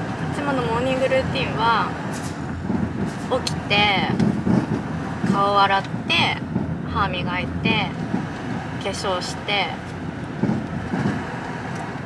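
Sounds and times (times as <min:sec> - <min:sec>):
car road and engine noise: 0:00.0 - 0:12.0.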